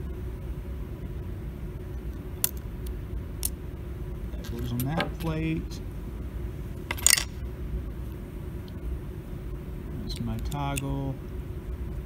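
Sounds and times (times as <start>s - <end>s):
steady low hum: 0.0s - 12.0s
metal parts clinking on wood: 4.4s - 5.4s, 6.9s - 7.3s.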